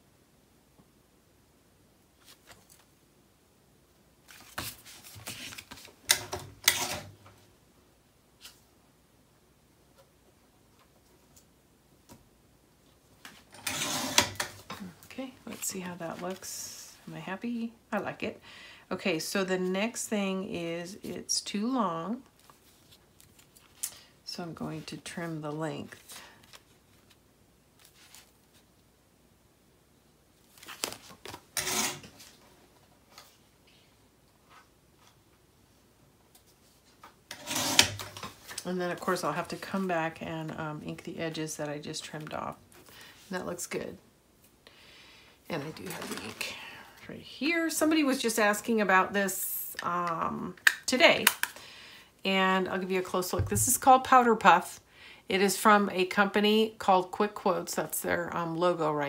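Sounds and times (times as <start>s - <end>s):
paper rustling and scraping: 4.3s - 6.0s, 27.8s - 28.6s
paper rustling: 4.3s - 7.1s, 27.8s - 28.7s, 30.4s - 32.4s.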